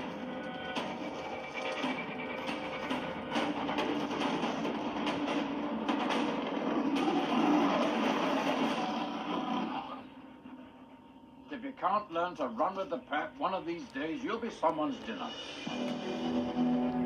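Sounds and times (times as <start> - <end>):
trailer music: 0.0 - 10.3, 15.2 - 17.0.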